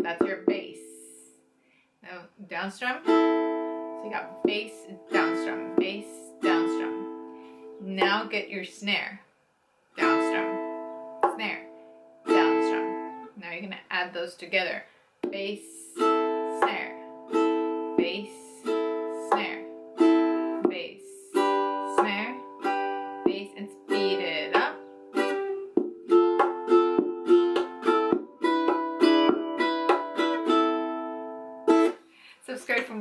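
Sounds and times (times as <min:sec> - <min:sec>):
ukulele played percussively: 0:00.0 - 0:01.0, 0:03.0 - 0:07.3, 0:08.0 - 0:08.4, 0:10.0 - 0:13.3, 0:15.2 - 0:32.0
ukulele strumming: 0:00.0 - 0:01.2, 0:02.8 - 0:08.4, 0:10.0 - 0:13.3, 0:15.2 - 0:32.1
thumb hits on ukulele body: 0:25.7 - 0:30.3.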